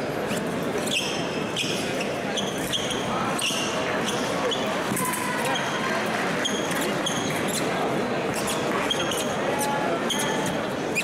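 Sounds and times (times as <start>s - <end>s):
crowd murmur: 0.0s - 11.0s
shoes squeaking on floor: 0.2s - 4.8s, 6.4s - 11.0s.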